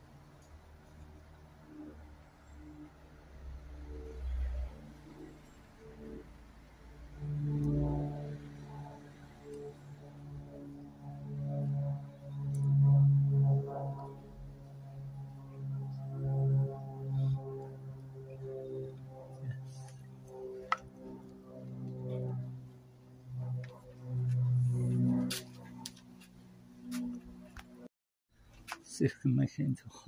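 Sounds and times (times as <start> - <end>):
low sustained tune: 0.0 - 27.9.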